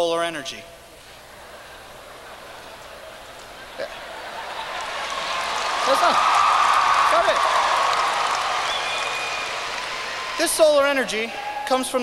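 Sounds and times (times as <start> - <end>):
large audience applauding: 2.9 - 11.8.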